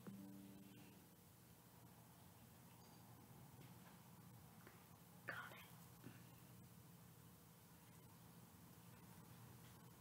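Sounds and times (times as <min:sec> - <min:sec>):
faint steady hum: 0:00.0 - 0:10.0
faint whisper: 0:04.7 - 0:06.3.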